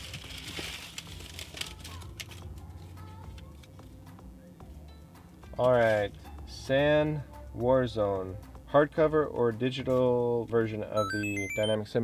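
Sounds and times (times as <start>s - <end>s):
paper slips rustling and crinkling: 0.0s - 2.4s.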